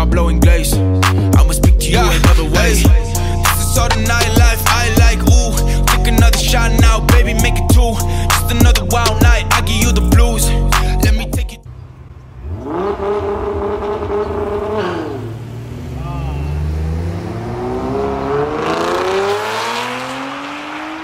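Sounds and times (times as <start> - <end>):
drag car engines revving: 11.7 - 21.0.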